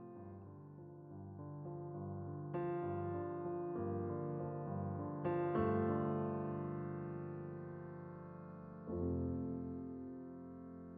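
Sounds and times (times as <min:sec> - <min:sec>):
soft piano chords: 0:00.0 - 0:10.9.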